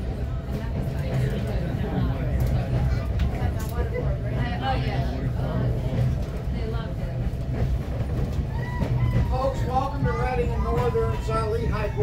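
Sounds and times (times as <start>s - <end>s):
people talking: 0.0s - 7.6s, 9.3s - 12.0s
railway coach rumble: 0.0s - 12.0s.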